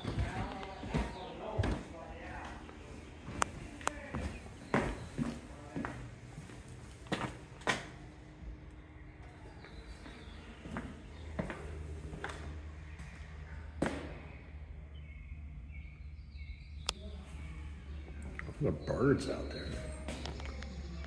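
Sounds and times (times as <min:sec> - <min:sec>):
footsteps on concrete floor: 0:00.0 - 0:08.1, 0:09.6 - 0:14.3, 0:19.5 - 0:20.6
low hum: 0:00.0 - 0:21.0.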